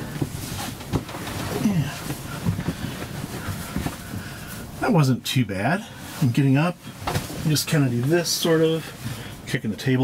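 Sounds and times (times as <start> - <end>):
rustling on seat cushion: 0.0 - 9.6.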